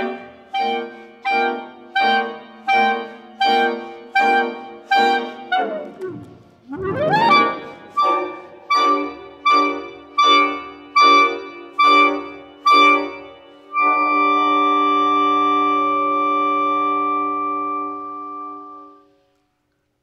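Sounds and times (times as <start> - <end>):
clarinet with electronics: 0.0 - 19.4.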